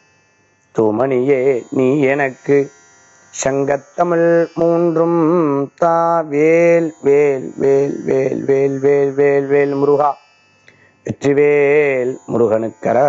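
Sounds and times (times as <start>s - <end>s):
man chanting a prayer: 0.8s - 2.7s, 3.4s - 10.2s, 11.1s - 13.0s.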